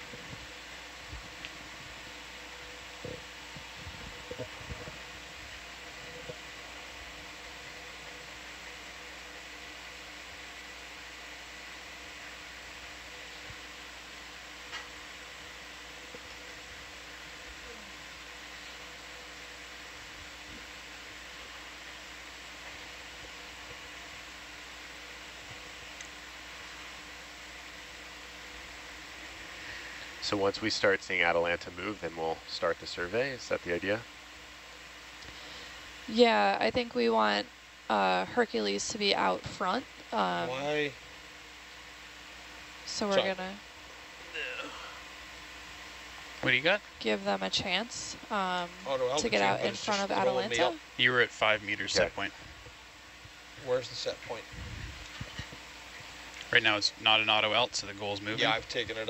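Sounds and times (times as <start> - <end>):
electrical hum: 0.0 - 59.0
fan hiss: 0.0 - 59.0.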